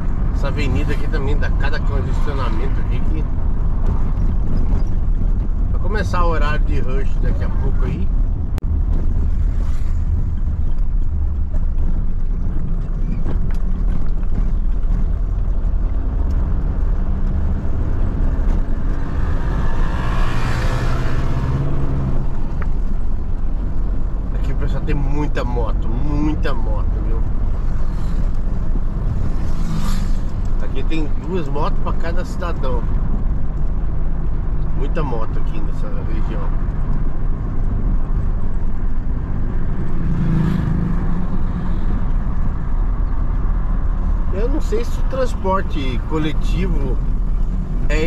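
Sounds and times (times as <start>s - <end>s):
van engine and tyres droning: 0.0s - 48.0s
motorcycle passing: 16.6s - 23.0s, 27.6s - 30.6s, 39.0s - 42.4s.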